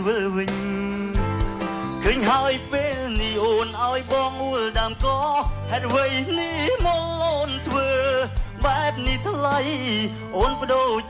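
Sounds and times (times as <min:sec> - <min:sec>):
band playing: 0:00.0 - 0:11.0
man singing into microphone: 0:00.0 - 0:11.0.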